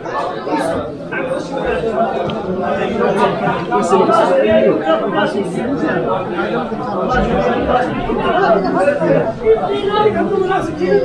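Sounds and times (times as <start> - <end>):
market crowd chatter: 0.0 - 11.0.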